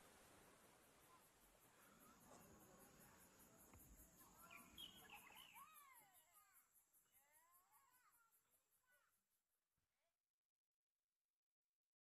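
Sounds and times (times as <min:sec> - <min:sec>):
high insect trill: 0:00.3 - 0:09.0
birds chirping: 0:04.2 - 0:06.0.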